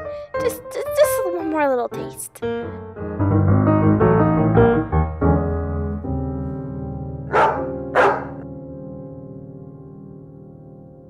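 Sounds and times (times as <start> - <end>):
piano music: 0.0 - 11.0
dog barks: 7.3 - 8.4.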